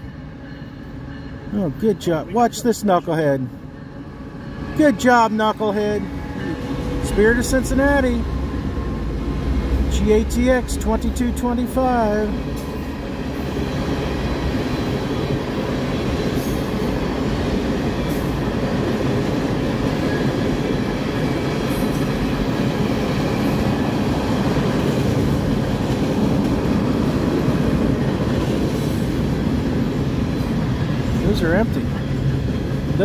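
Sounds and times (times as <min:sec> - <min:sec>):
train wheels rumbling on rails: 0:00.0 - 0:33.0.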